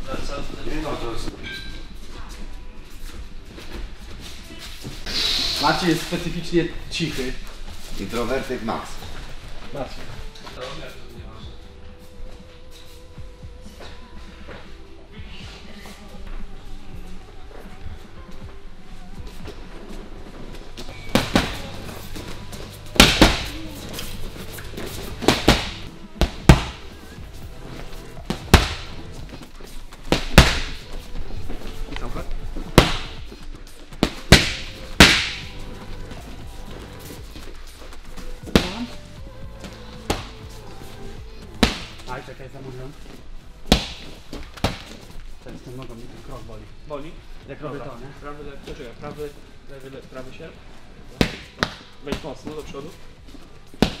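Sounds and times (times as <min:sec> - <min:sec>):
background music: 0:00.0 - 0:54.0
boxing gloves hitting focus mitts: 0:21.0 - 0:24.0, 0:24.6 - 0:27.2, 0:28.2 - 0:30.9, 0:32.6 - 0:33.4, 0:34.0 - 0:35.6, 0:38.4 - 0:39.0, 0:39.6 - 0:40.6, 0:41.6 - 0:42.2, 0:43.6 - 0:45.1, 0:51.2 - 0:52.6, 0:53.7 - 0:54.0.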